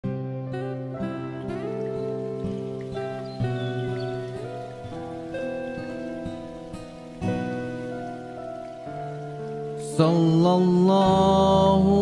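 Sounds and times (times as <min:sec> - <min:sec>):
soft pad-like instrumental music: 0:00.0 - 0:12.0
faint rain-like hiss: 0:00.1 - 0:12.0.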